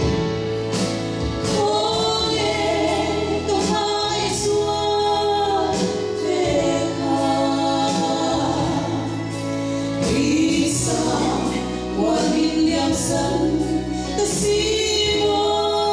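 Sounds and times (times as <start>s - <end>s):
electric keyboard chords: 0.0s - 15.9s
women singing a duet: 1.4s - 15.9s.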